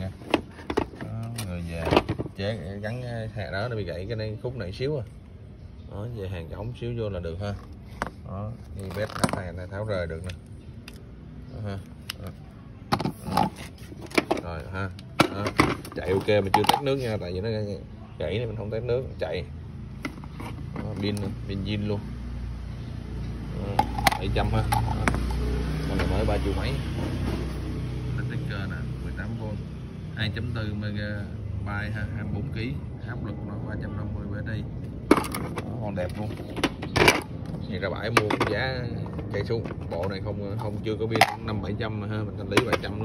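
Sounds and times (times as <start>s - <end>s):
people talking: 0.0s - 5.1s, 5.9s - 10.4s, 11.5s - 19.5s, 20.7s - 22.0s, 23.5s - 25.2s, 30.2s - 43.0s
man speaking: 1.0s - 5.1s
motor vehicle passing: 19.3s - 33.7s.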